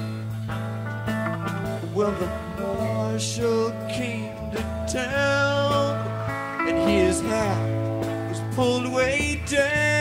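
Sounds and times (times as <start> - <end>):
country-rock band playing: 0.0 - 10.0
pedal steel guitar sliding: 6.0 - 9.5.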